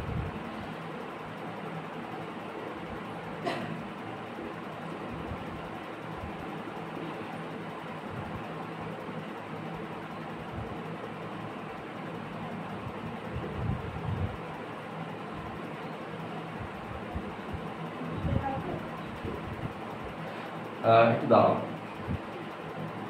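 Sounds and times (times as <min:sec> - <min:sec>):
low room hum: 0:00.0 - 0:23.0.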